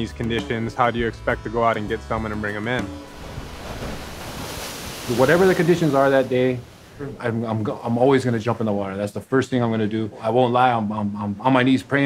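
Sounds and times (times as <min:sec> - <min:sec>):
ocean waves breaking: 0:02.2 - 0:08.4.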